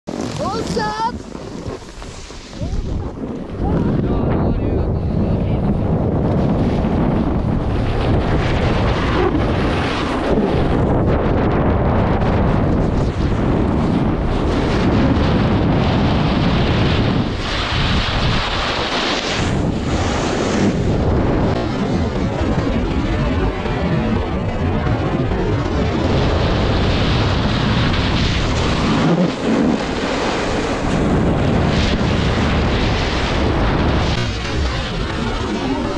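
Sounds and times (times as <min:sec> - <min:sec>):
snowboard edges carving snow: 0:00.1 - 0:04.4, 0:05.1 - 0:21.6, 0:27.2 - 0:35.9
wind rushing over microphone: 0:00.1 - 0:35.9.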